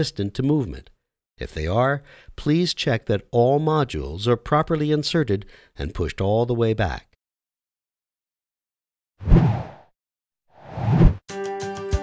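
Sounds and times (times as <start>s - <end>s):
whoosh sound effect: 10.6s - 11.2s.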